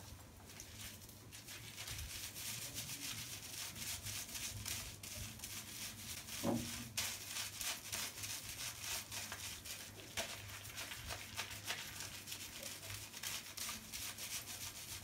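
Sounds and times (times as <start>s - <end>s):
fingertips rubbing wet hair: 0.5s - 15.0s.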